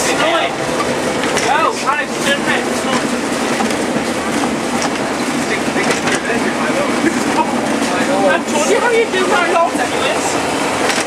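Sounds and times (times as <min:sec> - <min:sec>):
train rumble from inside carriage: 0:00.0 - 0:11.0
wheels clicking over rail joints: 0:00.0 - 0:11.0.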